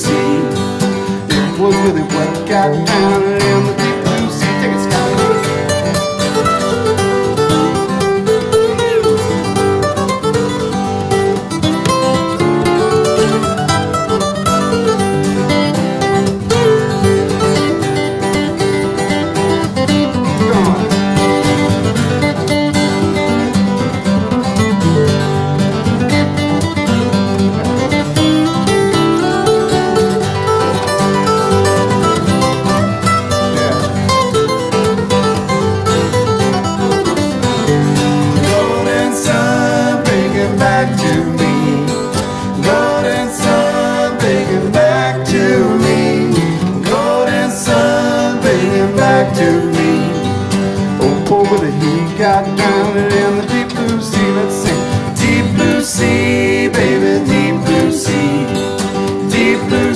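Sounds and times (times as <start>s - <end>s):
lead acoustic guitar solo: 0.0s - 59.9s
strummed rhythm guitar: 0.0s - 59.9s.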